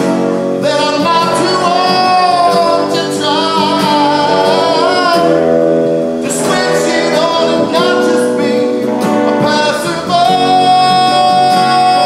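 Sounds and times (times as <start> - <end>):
electric guitar: 0.0 - 12.0
strummed acoustic guitar: 0.0 - 12.0
man singing with vibrato: 0.5 - 12.0.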